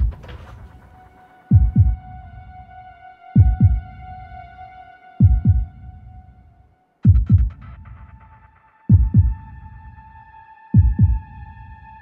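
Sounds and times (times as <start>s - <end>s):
heartbeat double thumps: 1.5s - 2.2s, 3.4s - 4.1s, 5.2s - 5.9s, 7.0s - 8.2s, 8.9s - 9.6s, 10.8s - 11.4s.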